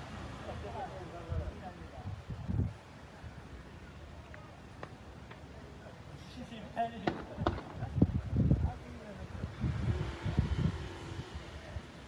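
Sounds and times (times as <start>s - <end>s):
wind buffeting microphone: 1.2s - 3.4s, 7.0s - 12.0s.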